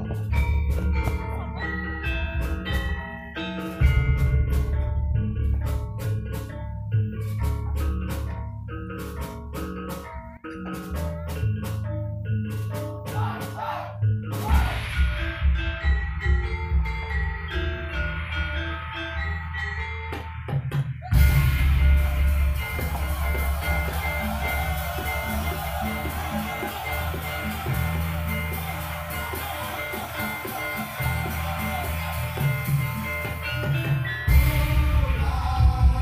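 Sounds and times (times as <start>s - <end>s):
metallophone notes: 0.0s - 13.1s, 14.0s - 34.9s
drums and percussion beat: 0.0s - 36.0s
gamelan ensemble music: 0.0s - 36.0s.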